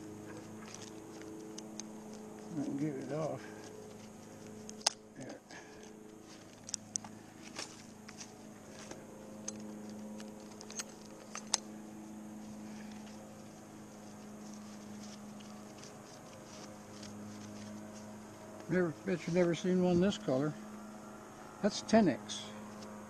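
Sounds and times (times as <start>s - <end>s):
carabiners clicking and rattling: 0.0s - 12.0s
steady low hum: 0.0s - 23.0s.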